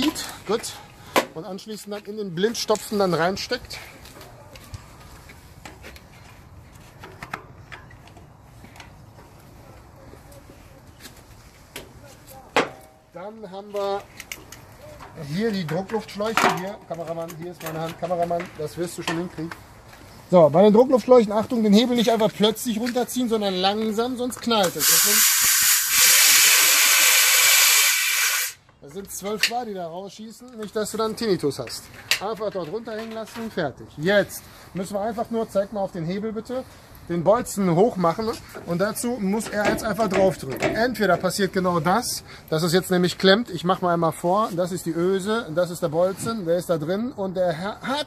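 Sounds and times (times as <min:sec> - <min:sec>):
compressed air hissing: 0:24.6 - 0:28.6.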